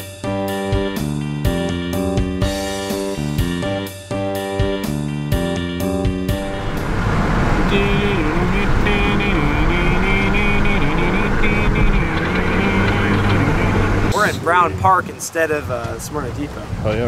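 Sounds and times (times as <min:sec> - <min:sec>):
wavering melody music: 0:00.2 - 0:16.1
car road and engine noise: 0:04.8 - 0:17.0.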